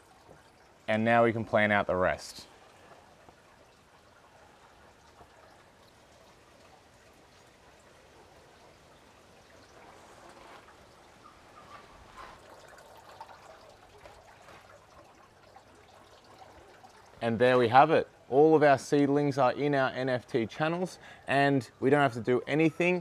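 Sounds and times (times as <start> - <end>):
water trickling through channels: 0.0 - 23.0.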